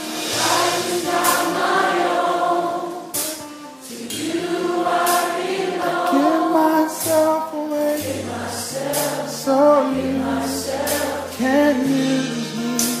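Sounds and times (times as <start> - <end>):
cymbal crashes: 0.0 - 2.0
gospel choir singing: 0.0 - 13.0
instrumental backing: 0.0 - 13.0.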